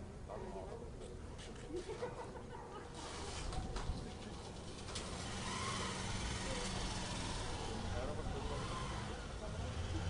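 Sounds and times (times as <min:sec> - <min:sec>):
faint voices: 0:06.0 - 0:10.0.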